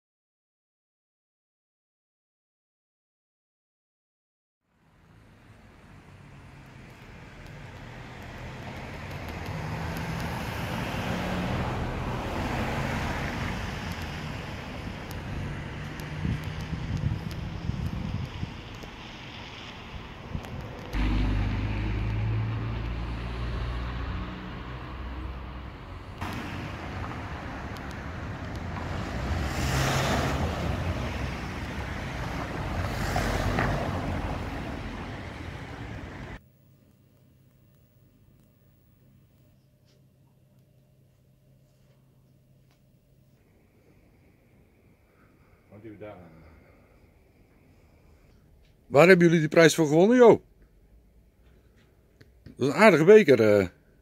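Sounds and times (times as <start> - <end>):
street traffic rumble: 4.6 - 36.5, 43.1 - 54.0
vehicles passing: 4.7 - 36.4, 43.4 - 54.0.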